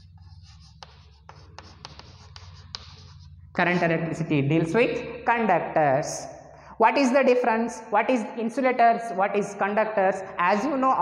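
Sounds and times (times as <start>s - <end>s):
chalk tapping: 0.0s - 3.8s
chalk scratching on blackboard: 0.0s - 3.9s.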